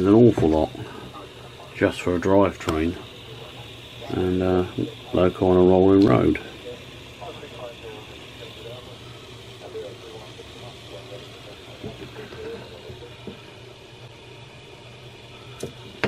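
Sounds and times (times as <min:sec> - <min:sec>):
model train motor humming: 0:00.0 - 0:16.0.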